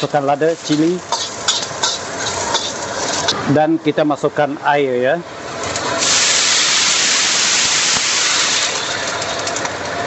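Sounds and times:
food sizzling in hot oil: 0.0 - 3.5, 5.5 - 9.6
steel spatula scraping wok: 0.0 - 3.5.

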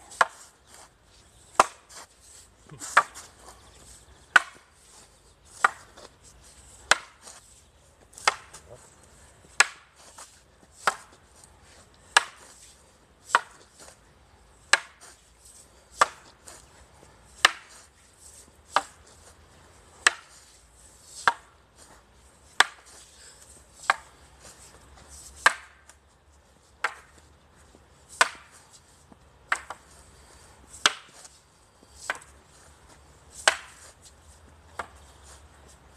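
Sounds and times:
wooden staffs clacking: 0.0 - 14.0, 14.6 - 26.0, 26.7 - 35.9.

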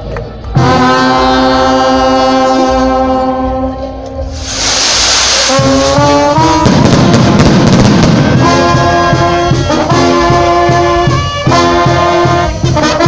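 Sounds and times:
brass band playing: 0.5 - 13.0
bright hiss: 4.3 - 6.6
drum hits: 4.5 - 9.7.

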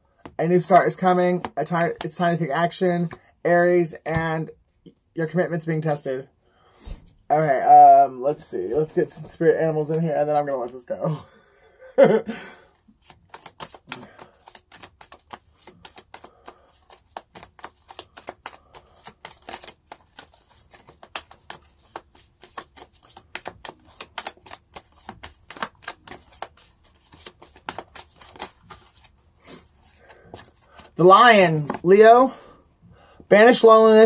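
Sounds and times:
cards being shuffled: 0.2 - 3.2, 12.9 - 32.0.

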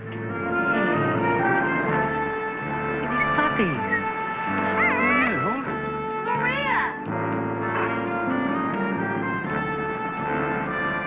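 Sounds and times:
puppy whining: 3.0 - 7.0.

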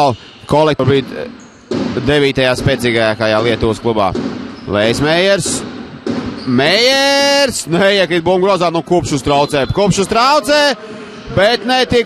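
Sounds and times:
basketball bouncing on court: 1.4 - 6.7
arena crowd noise: 4.7 - 12.0
commentator speaking: 6.5 - 12.0.

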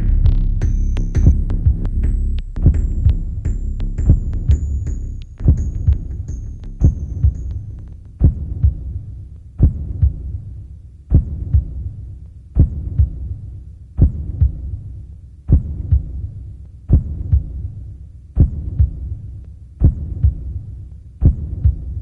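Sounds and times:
heartbeat double thumps: 0.0 - 14.9, 15.5 - 22.0
low hum: 0.0 - 22.0.

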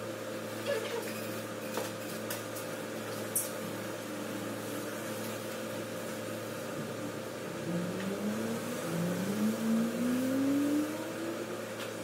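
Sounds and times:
steady mechanical hum: 0.0 - 12.0
engine rising in pitch: 7.0 - 11.8.

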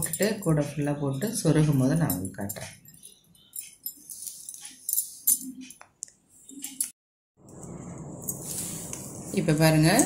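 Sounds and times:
plastic strands rustling and scraping: 3.9 - 5.3, 8.2 - 10.0.

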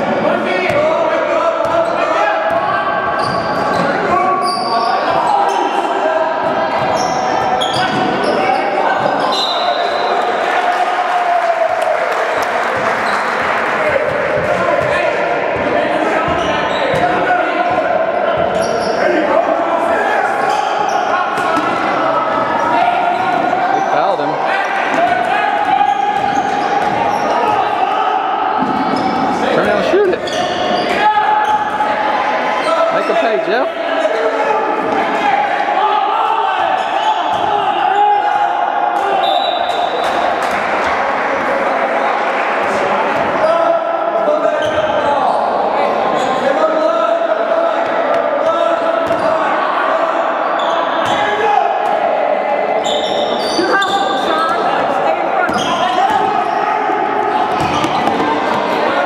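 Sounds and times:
unclear voices of players and crowd: 0.0 - 59.0.

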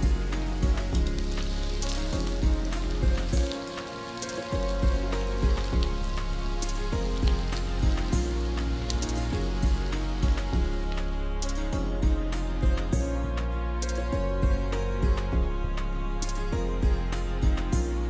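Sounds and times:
oil sizzling and popping: 0.0 - 11.7
background music with steady beat: 0.0 - 18.0.

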